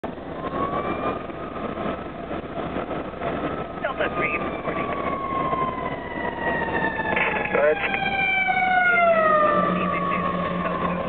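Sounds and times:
fire engine siren wailing: 0.0s - 11.0s
road noise: 0.0s - 11.0s
truck engine: 0.0s - 11.0s.

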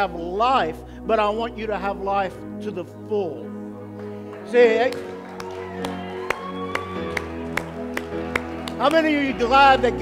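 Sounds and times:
keyboard sustained chords: 0.0s - 10.0s.

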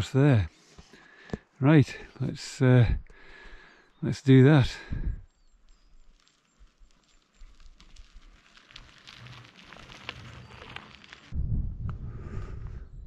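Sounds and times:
wind rumble on microphone: 4.9s - 5.3s, 11.3s - 13.0s
bicycle tyres hissing on wet road: 6.2s - 11.3s.

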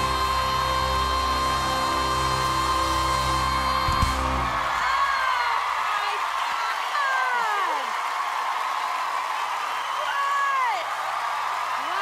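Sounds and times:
band accompaniment: 0.0s - 5.0s.

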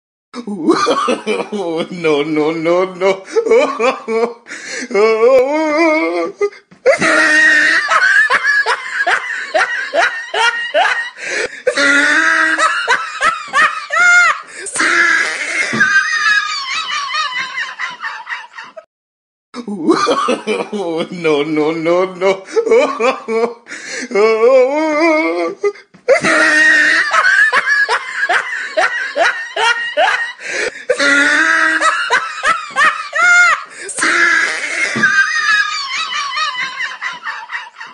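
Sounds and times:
person laughing high-pitched: 5.0s - 18.8s, 24.7s - 37.9s.

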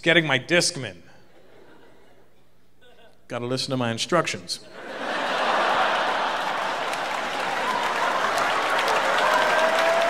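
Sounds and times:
audience applauding: 5.2s - 10.0s.

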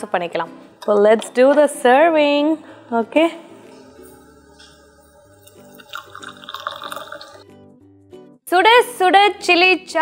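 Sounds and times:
background music: 0.0s - 10.0s
tea pouring and splashing into mug: 4.6s - 7.6s.

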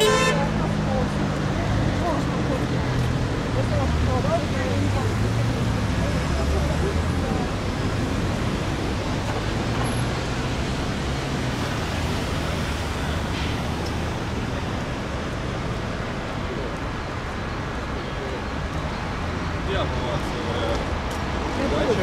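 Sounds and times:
city traffic noise: 0.0s - 22.0s.

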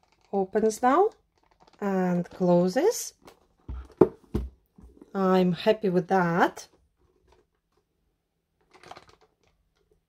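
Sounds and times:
wooden box closing knocks: 3.7s - 4.6s.

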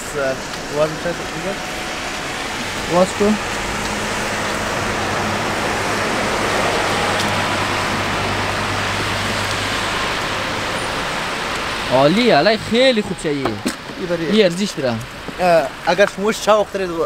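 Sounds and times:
constant hiss: 0.0s - 17.0s.

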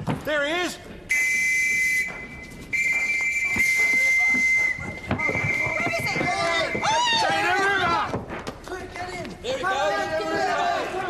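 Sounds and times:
police whistle blasts: 1.1s - 6.0s
voices shouting: 5.2s - 8.2s, 9.5s - 11.0s.

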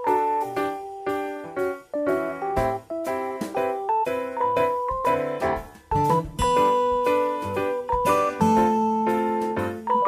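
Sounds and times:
instrumental music with held chords: 0.0s - 10.0s.

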